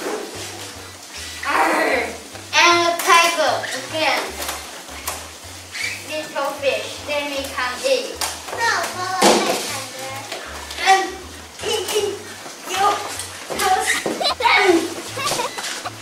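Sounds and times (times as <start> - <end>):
background music with bass line: 0.0 - 16.0
children speaking: 1.2 - 16.0.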